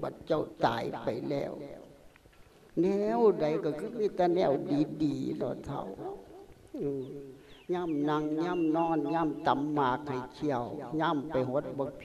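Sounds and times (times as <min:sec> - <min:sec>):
man chanting a sermon: 0:07.7 - 0:12.0.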